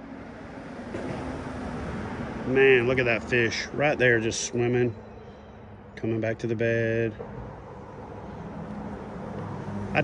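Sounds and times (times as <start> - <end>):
vehicle crossing a bridge: 0.0 - 6.0.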